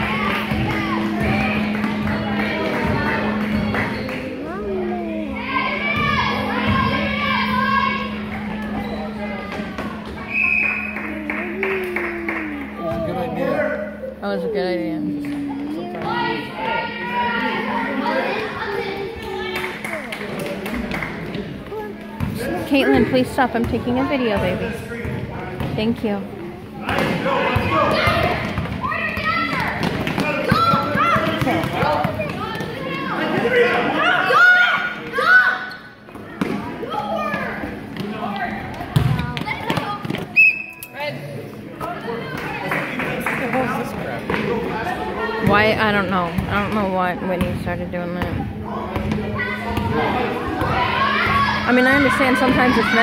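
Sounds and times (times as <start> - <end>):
low hum: 0.0 - 19.0
indistinct voices: 0.0 - 24.6.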